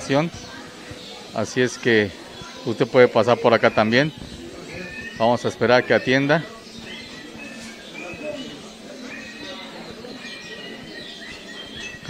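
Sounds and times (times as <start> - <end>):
distant indistinct voices: 0.0 - 12.0.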